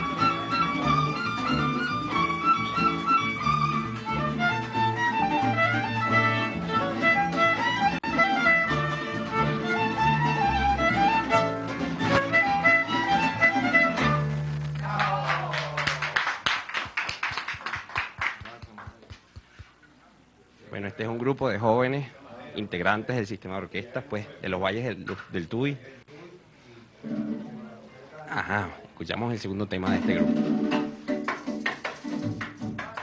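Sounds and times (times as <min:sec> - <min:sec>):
string ensemble playing: 0:00.0 - 0:14.6
people clapping: 0:14.4 - 0:19.8, 0:30.7 - 0:33.0.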